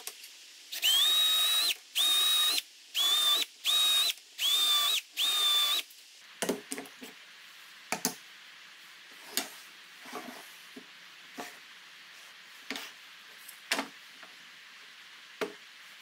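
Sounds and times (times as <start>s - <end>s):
cordless drill whining: 0.7s - 5.8s.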